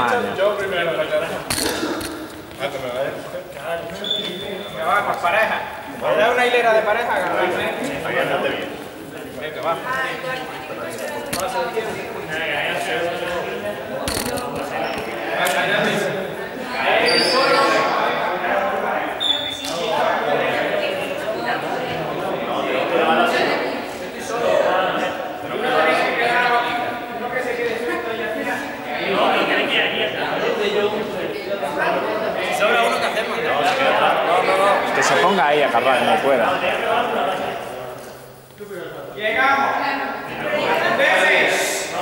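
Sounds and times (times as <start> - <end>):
people talking: 0.0 - 42.0
voices echoing in a hall: 0.0 - 42.0.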